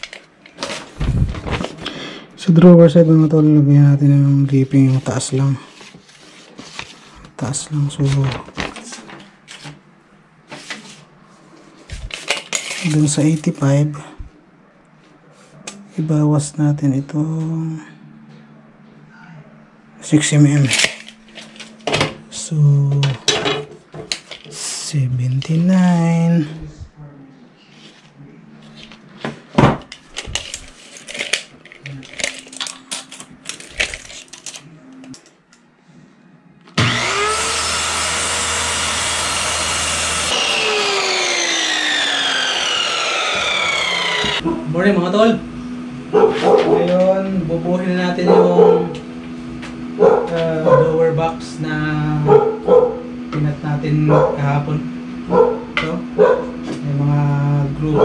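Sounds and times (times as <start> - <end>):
person speaking: 2.4 - 5.8, 7.3 - 9.2, 12.8 - 14.3, 19.1 - 21.1, 22.3 - 23.3, 24.5 - 27.6, 40.3 - 49.1, 50.0 - 52.4, 56.8 - 58.0
power tool running: 36.8 - 44.5.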